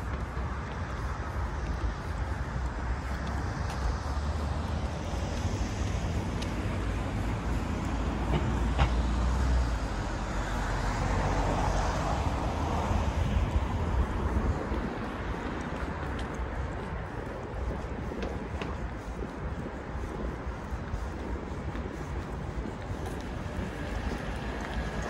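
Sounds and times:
cars passing on road: 0.0 - 25.0.

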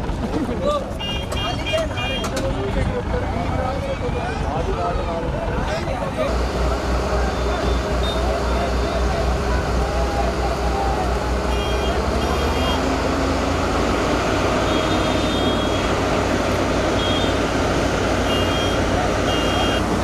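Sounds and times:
heavy diesel machinery running: 0.0 - 20.0.

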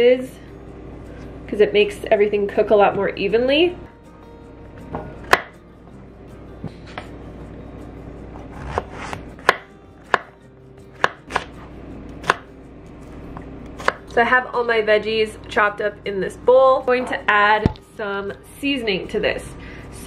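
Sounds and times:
knife chopping on cutting board: 5.2 - 5.5, 8.4 - 10.4, 11.0 - 11.6, 12.2 - 12.5, 13.8 - 14.0.

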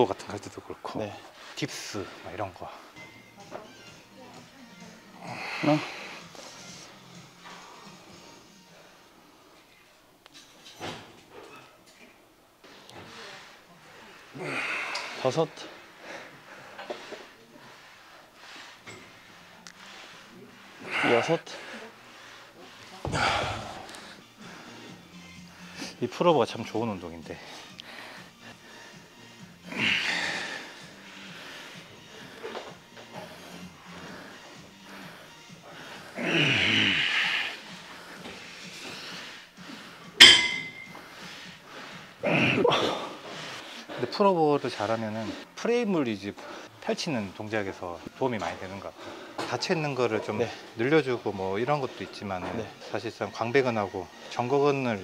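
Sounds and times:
man breathing heavily: 5.2 - 9.7, 12.6 - 26.0, 27.3 - 44.2, 46.3 - 46.8, 48.9 - 49.5
gym background noise: 9.0 - 25.0, 34.9 - 45.4
metallic clink of gym weights: 40.2 - 41.0.

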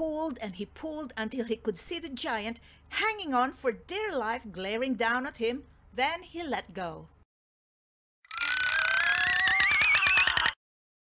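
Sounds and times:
run of speeding clicks: 8.3 - 10.6
warbling whistle climbing in pitch: 8.3 - 10.6.

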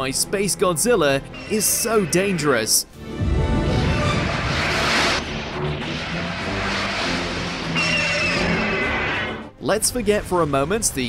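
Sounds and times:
rumble of blasts: 1.2 - 11.0
pitched cry or whine: 1.4 - 2.8, 5.9 - 9.4.

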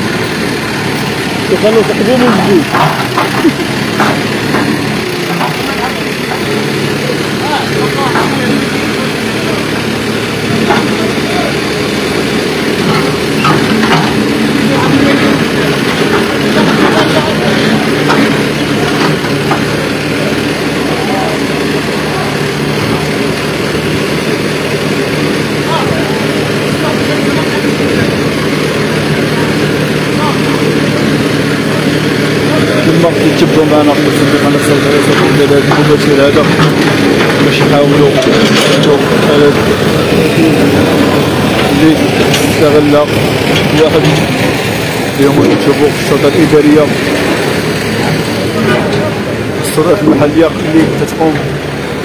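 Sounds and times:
diesel engine running: 0.0 - 52.0.

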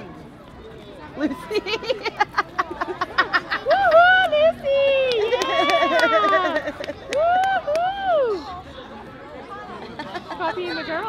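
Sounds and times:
street crowd noise: 0.0 - 11.0.

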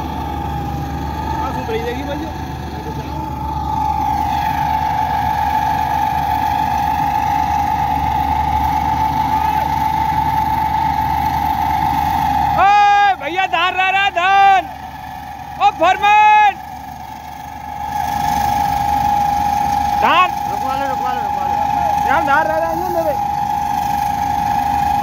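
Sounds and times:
combine harvester engine humming: 0.0 - 25.0
loud high-pitched held notes: 0.0 - 25.0.

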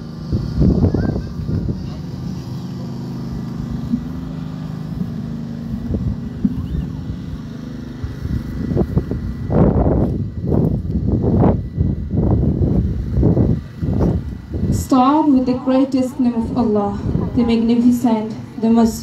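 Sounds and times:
low engine hum: 0.0 - 19.0.

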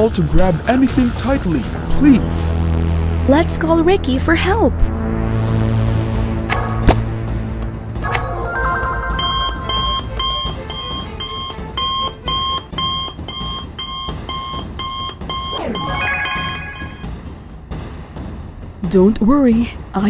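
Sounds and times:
background music: 0.0 - 20.0
electronic ringing beeps: 8.1 - 17.2.

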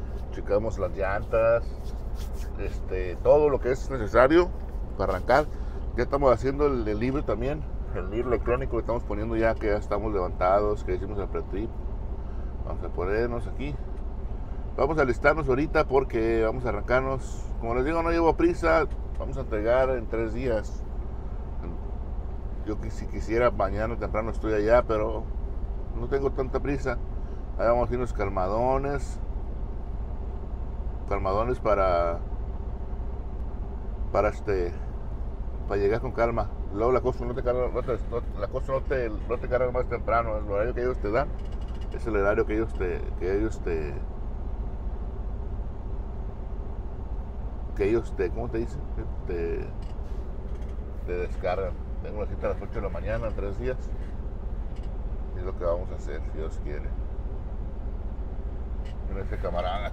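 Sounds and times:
diesel engine idling: 0.0 - 59.9.

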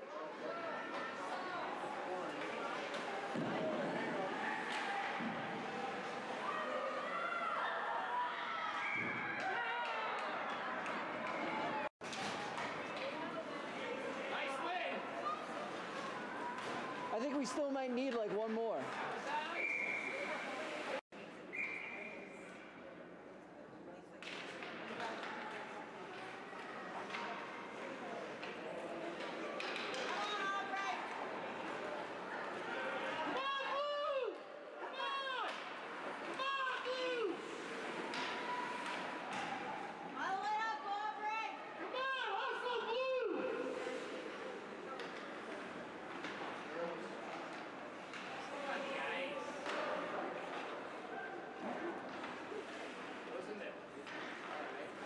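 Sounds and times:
knocks of sticks and puck: 24.2 - 27.5, 28.4 - 30.4.

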